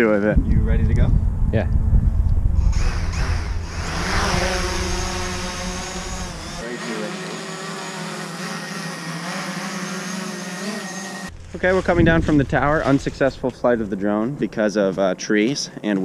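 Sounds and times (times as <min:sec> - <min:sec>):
wind rumble on microphone: 0:00.0 - 0:06.6, 0:11.4 - 0:14.0
drone propellers whining: 0:00.8 - 0:13.2.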